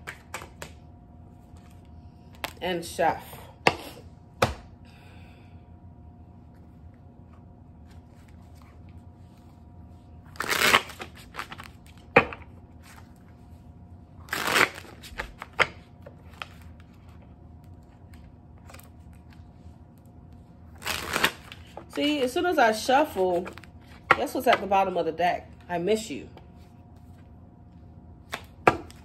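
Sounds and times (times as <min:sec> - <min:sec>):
cards being riffle shuffled: 0:10.3 - 0:12.1, 0:14.2 - 0:19.6, 0:20.8 - 0:21.9.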